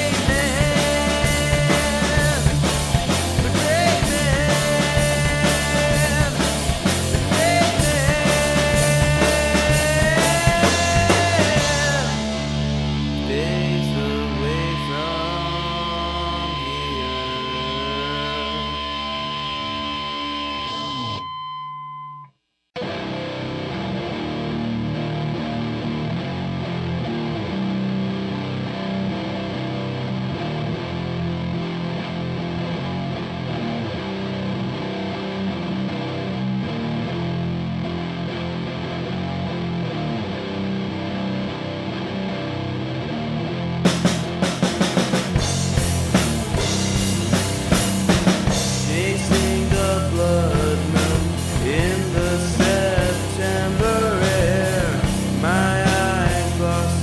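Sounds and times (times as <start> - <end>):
heavy rock music: 0.0 - 21.3, 22.8 - 57.0
distorted electric guitar riff: 0.0 - 22.1, 22.8 - 57.0.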